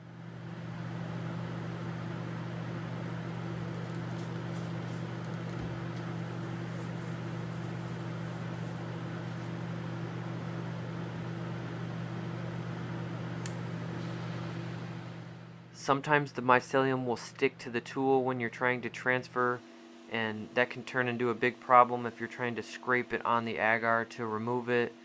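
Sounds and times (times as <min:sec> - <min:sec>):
blower humming with air rush: 0:00.0 - 0:25.0.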